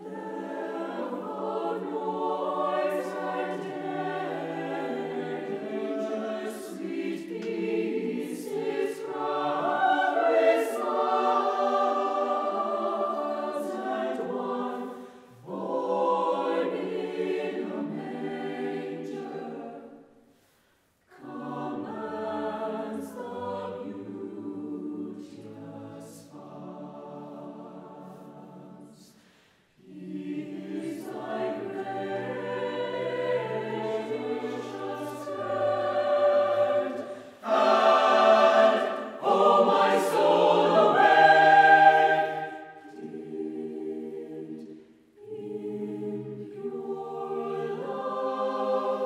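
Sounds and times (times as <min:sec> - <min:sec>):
mixed choir singing a cappella: 0:00.0 - 0:49.0.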